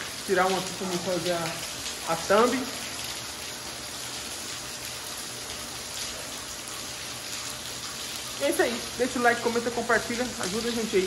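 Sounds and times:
rain on wet pavement: 0.0s - 11.0s.

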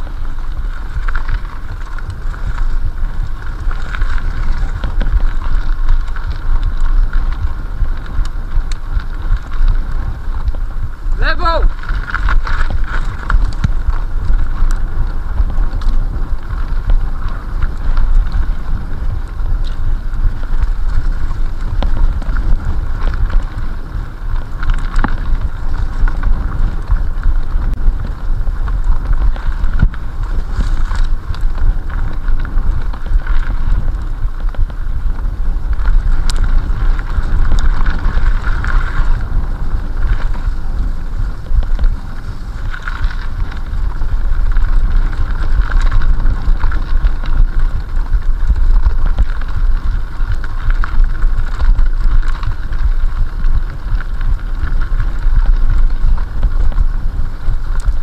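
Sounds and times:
mountain bike rumbling and rattling: 0.0s - 58.0s
wind buffeting microphone: 0.0s - 58.0s.

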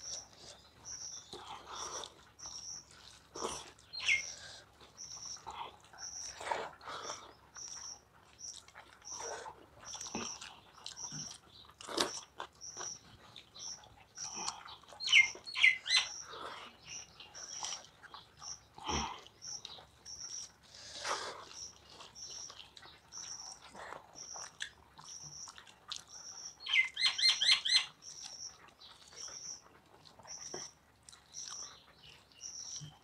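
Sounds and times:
chewing with wet mouth clicks: 0.0s - 33.0s.

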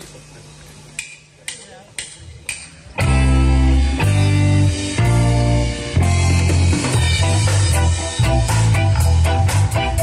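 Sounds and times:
drumstick clicks: 1.0s - 2.8s
rock band playing loud chords: 2.9s - 10.0s.

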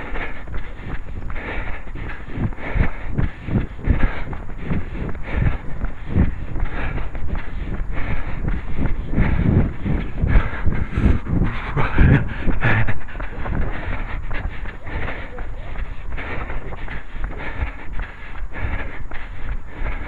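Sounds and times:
footsteps on tarmac: 0.0s - 20.0s
hard breathing: 0.0s - 20.0s
wind rumbling on microphone: 0.0s - 20.0s.

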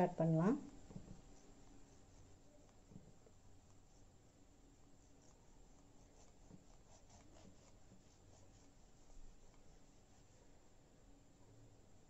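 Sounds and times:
knife sawing through sponge cake: 6.0s - 8.8s.

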